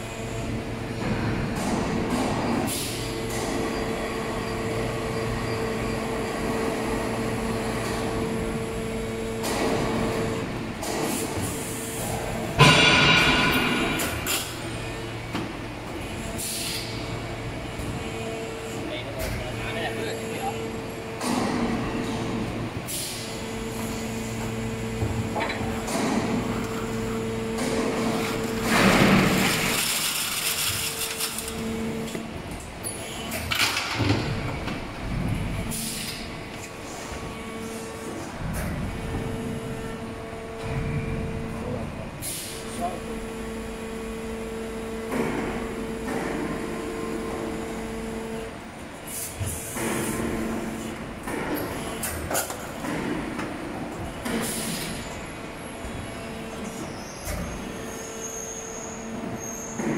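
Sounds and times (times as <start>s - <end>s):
two-tone machine hum: 0.0s - 59.9s
machine knocks: 12.6s - 14.5s.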